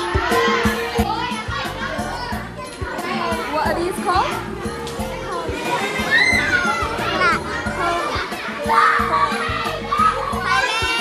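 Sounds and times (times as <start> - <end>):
background music with steady beat: 0.0 - 11.0
children chattering and calling out: 0.0 - 11.0.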